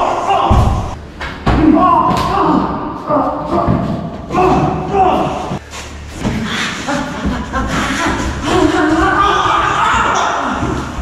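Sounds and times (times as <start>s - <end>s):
voices in a large room: 0.0s - 11.0s.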